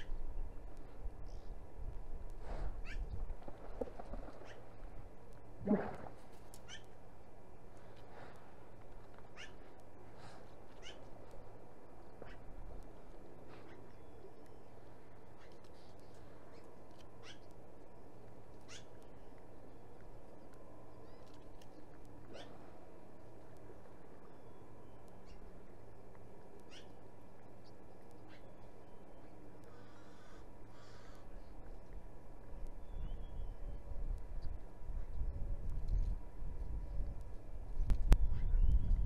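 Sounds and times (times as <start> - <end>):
low outdoor rumble: 0.0 - 39.0
steady low background noise: 0.0 - 39.0
high-pitched animal calls: 17.2 - 17.5, 18.7 - 18.9.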